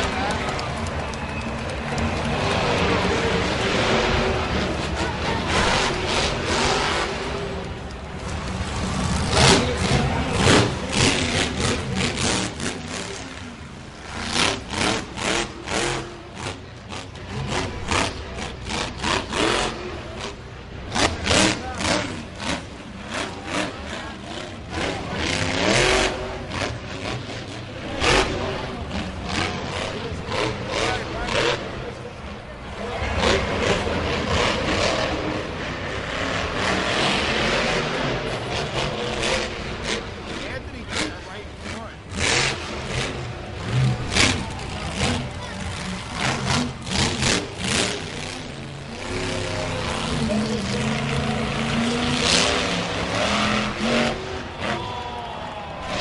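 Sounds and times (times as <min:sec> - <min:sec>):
arena noise: 0:00.0 - 0:56.0
monster truck engine revving: 0:00.0 - 0:56.0.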